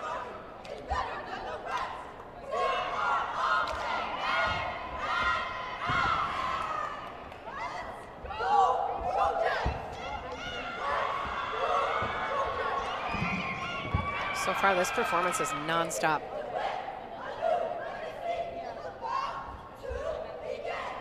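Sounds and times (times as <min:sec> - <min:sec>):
crowd noise: 0:00.0 - 0:21.0
squad shouting a cheer: 0:00.0 - 0:21.0.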